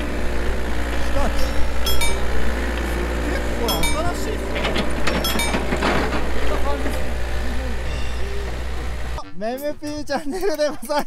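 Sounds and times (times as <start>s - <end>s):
excavator diesel engine: 0.0s - 9.3s
sharp metal clinks: 1.4s - 2.3s, 3.6s - 4.3s, 5.1s - 5.7s.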